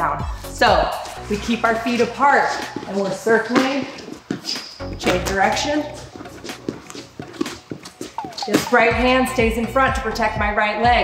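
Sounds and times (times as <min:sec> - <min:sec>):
shoes shuffling on a mat: 0:00.8 - 0:09.4.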